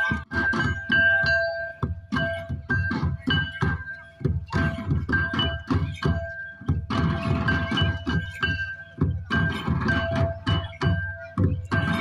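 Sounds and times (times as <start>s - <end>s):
folk drums beaten quickly: 0.0s - 12.0s.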